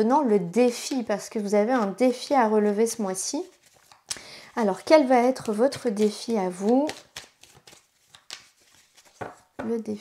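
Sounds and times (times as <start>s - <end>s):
cards being shuffled by hand: 3.4s - 9.6s.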